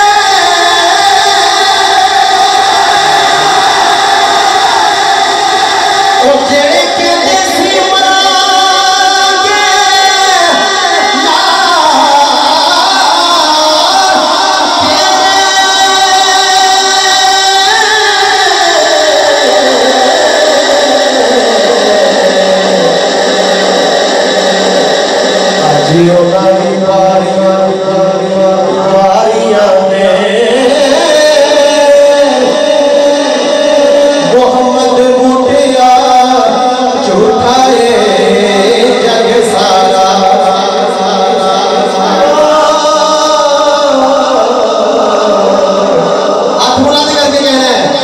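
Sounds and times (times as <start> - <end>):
man singing through echoing pa: 0.0 - 48.0.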